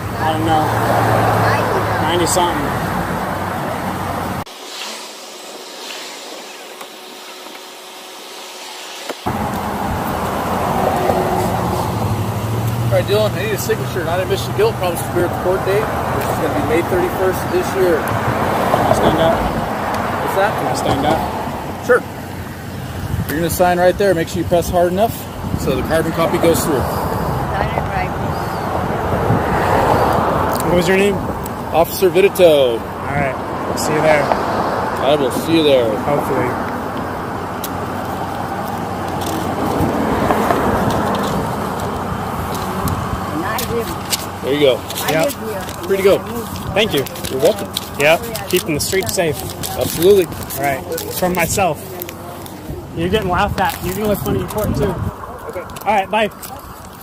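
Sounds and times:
road traffic rumble and hiss: 0.0s - 57.0s
steady rushing outdoor noise: 0.0s - 57.0s.

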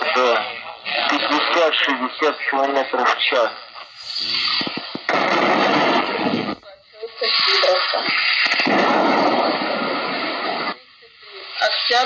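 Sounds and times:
garbled radio voices: 0.0s - 8.8s
radio static hiss: 0.0s - 12.0s.

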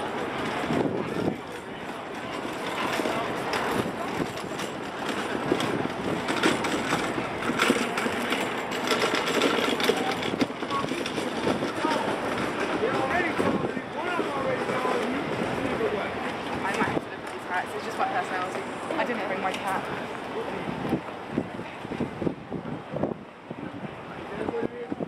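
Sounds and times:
outdoor background noise: 0.0s - 25.0s
people chattering: 0.0s - 25.0s.

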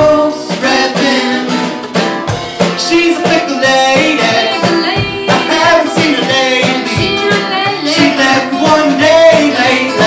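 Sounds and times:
person singing: 0.0s - 1.7s, 2.8s - 10.0s
acoustic guitar strummed: 0.0s - 10.0s
bucket drum strikes: 0.0s - 10.0s.

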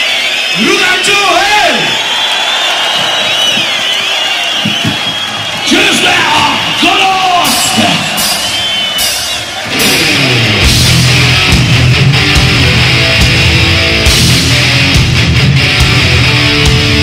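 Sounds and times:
crowd noise: 0.0s - 17.0s
singer yelling into microphone: 5.6s - 8.4s.

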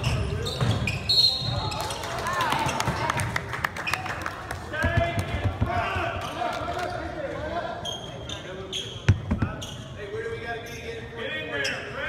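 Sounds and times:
shoe squeaks: 0.0s - 1.8s, 7.8s - 12.0s
players' voices: 4.5s - 12.0s
basketball bouncing on hardwood: 9.1s - 9.6s.

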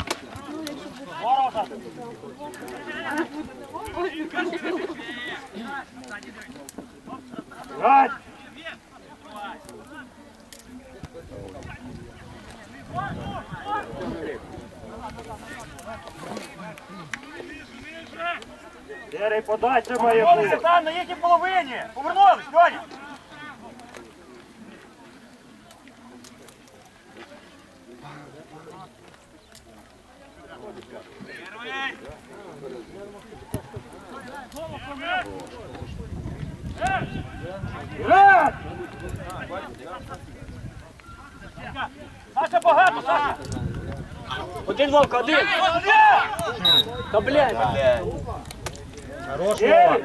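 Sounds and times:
footballers shouting calls: 0.0s - 29.3s, 29.9s - 50.0s
people shouting: 36.8s - 39.0s, 41.8s - 43.4s, 44.3s - 47.9s.

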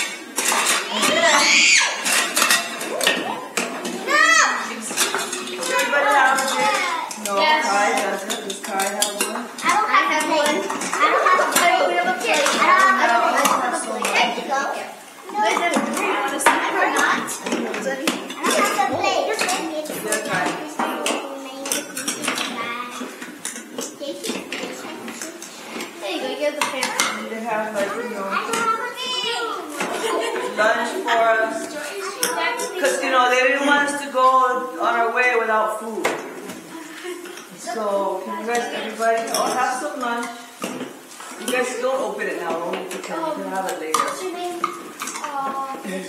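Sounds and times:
dishes and chopsticks clinking: 0.0s - 14.3s, 19.4s - 26.0s, 26.6s - 27.9s
children's voices: 0.0s - 35.0s, 36.6s - 40.6s, 42.9s - 46.0s.

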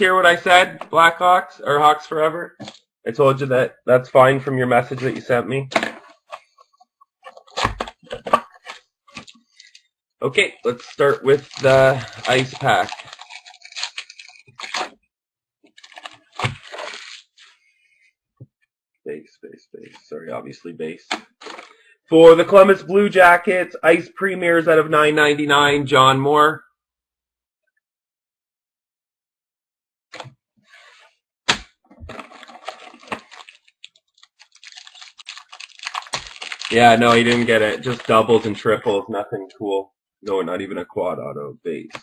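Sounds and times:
crisp clicks: 10.7s - 15.0s
wrapper tearing and crinkling: 10.7s - 15.0s, 15.7s - 17.6s, 21.4s - 21.8s, 32.1s - 38.8s.

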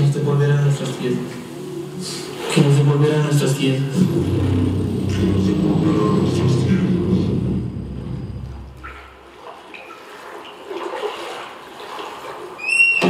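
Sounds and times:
low rumbling drone: 0.0s - 9.4s
high rising tone: 1.4s - 9.3s.

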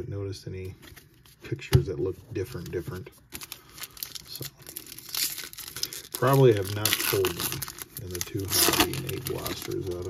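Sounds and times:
card pack wrapper tearing and crinkling: 3.3s - 10.0s.

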